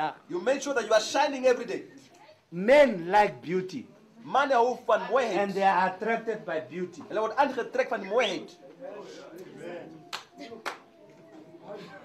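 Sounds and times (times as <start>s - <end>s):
faint background voices: 3.6s - 12.0s
hand claps: 10.1s - 10.9s.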